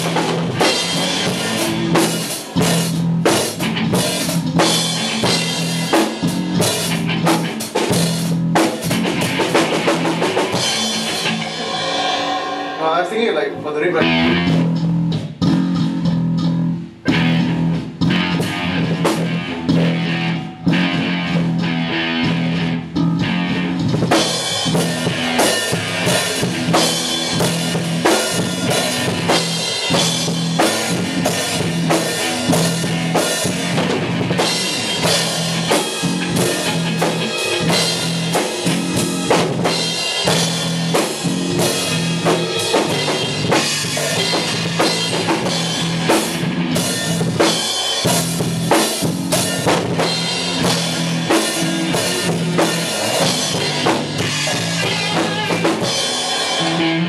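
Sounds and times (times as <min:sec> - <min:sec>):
drum kit rock groove: 0:00.0 - 0:57.0
low guitar note ringing: 0:10.5 - 0:14.7.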